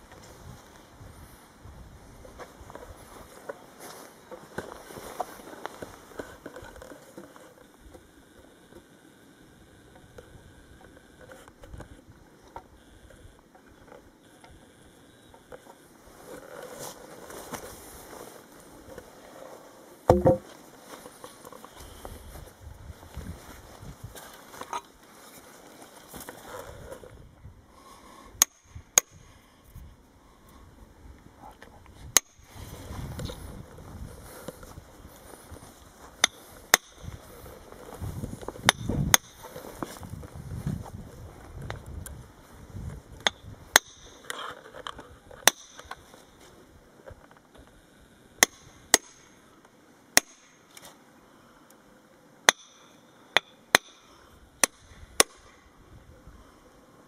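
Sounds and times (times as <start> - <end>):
hammer striking steel chisel: 20.1 - 20.4, 52.5 - 55.5.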